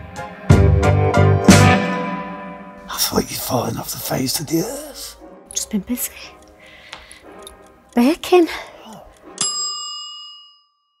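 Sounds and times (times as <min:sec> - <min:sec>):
bell ding: 0:09.4 - 0:11.0.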